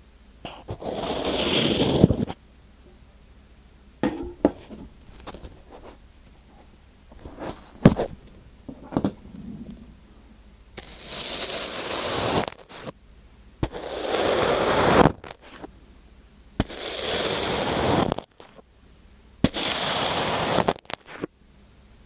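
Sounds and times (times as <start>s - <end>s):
fork crackling through sand: 10.8s - 12.9s, 16.6s - 18.6s.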